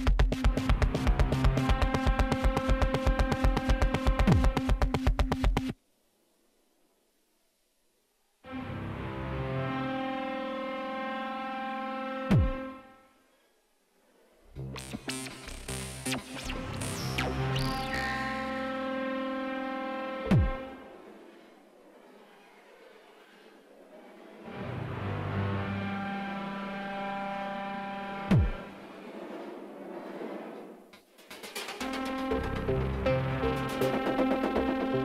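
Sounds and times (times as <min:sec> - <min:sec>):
synthesizer drone: 0:14.5 - 0:21.8, 0:24.4 - 0:29.4, 0:31.8 - 0:35.0
held synthesizer note: 0:14.6 - 0:20.9.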